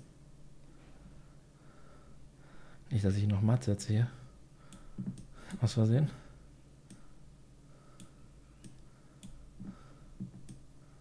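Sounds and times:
faint computer mouse clicks: 8.0 - 9.4, 10.2 - 10.6.

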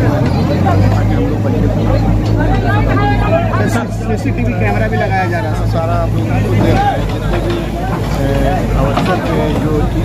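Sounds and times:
diesel engine humming: 0.0 - 10.0
people's voices: 0.0 - 10.0.

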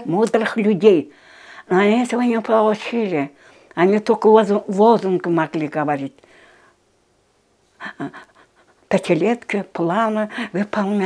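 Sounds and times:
woman speaking: 0.0 - 6.2, 7.8 - 11.0
woman breathing: 1.1 - 1.7, 3.4 - 3.8, 6.2 - 6.9.

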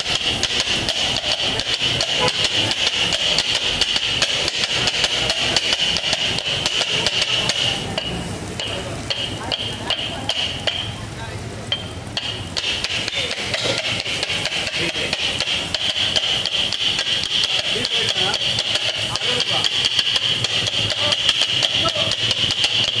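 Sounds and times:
steel blades clanging on griddle: 0.0 - 23.0.

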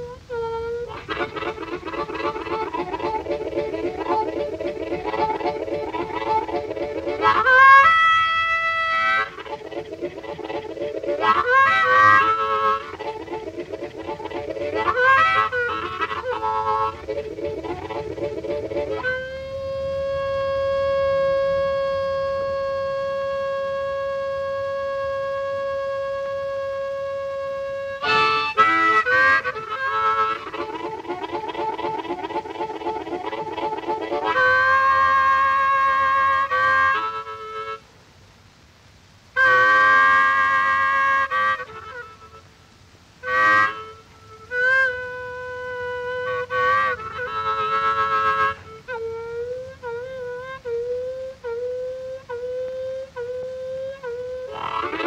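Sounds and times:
blues harmonica: 0.0 - 38.3, 39.0 - 55.0.

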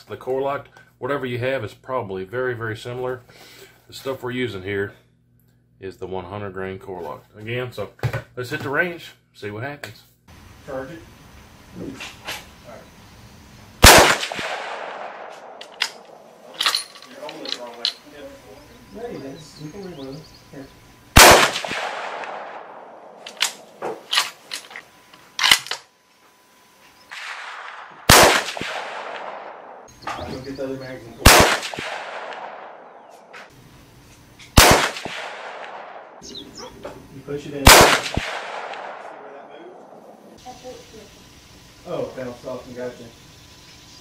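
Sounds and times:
rifle shot with echo: 13.8 - 16.6, 21.2 - 24.0, 27.1 - 29.9, 31.2 - 33.4, 34.6 - 36.2, 37.6 - 40.2
sharp clicks: 13.8 - 18.0, 21.2 - 25.9, 37.7 - 39.0.

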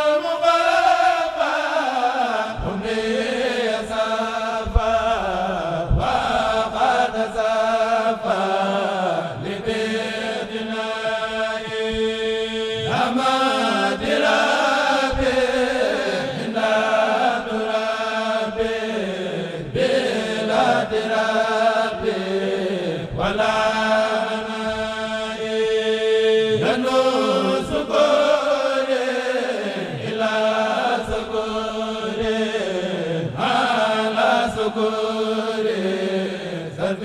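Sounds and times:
men chanting in unison: 0.0 - 37.0.

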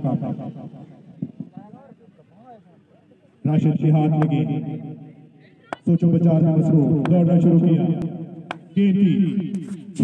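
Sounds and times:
man speaking: 5.8 - 8.1, 8.7 - 10.0.

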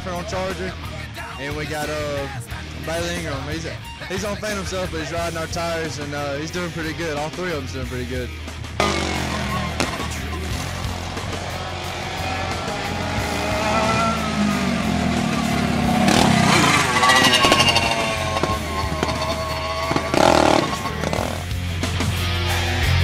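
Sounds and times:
rock music: 0.0 - 23.0
kart engines revving: 8.4 - 22.9.

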